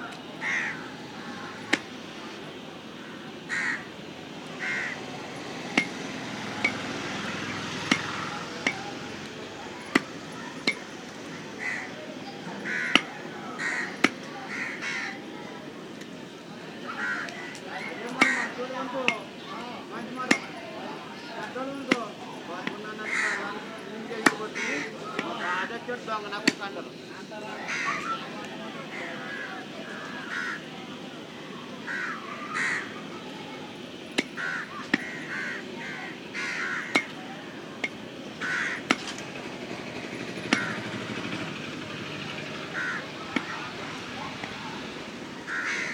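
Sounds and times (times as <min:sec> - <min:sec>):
crows cawing: 0:00.4 - 0:01.8, 0:03.0 - 0:03.9, 0:04.6 - 0:05.1, 0:11.6 - 0:12.0, 0:12.6 - 0:15.2, 0:16.9 - 0:19.5, 0:23.0 - 0:23.6, 0:24.3 - 0:25.7, 0:27.6 - 0:28.2, 0:28.9 - 0:30.6, 0:31.8 - 0:33.0, 0:34.3 - 0:37.2, 0:38.4 - 0:39.2, 0:40.4 - 0:41.4, 0:42.2 - 0:43.8, 0:45.4 - 0:45.9.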